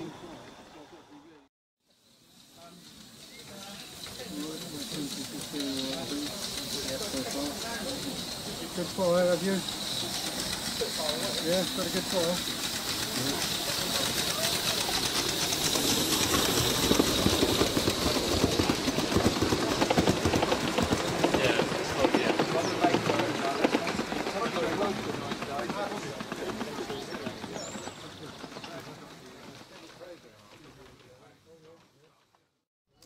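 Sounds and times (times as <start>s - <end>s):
model train wheels rattling: 2.0s - 32.2s
indistinct voices: 2.6s - 30.2s.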